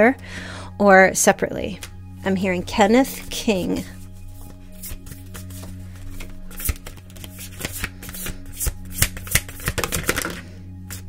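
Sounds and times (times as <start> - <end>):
cards being shuffled: 3.9 - 11.0.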